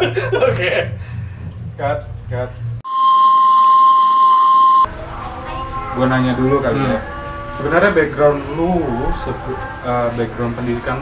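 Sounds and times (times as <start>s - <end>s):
high steam whistle: 2.9s - 5.5s.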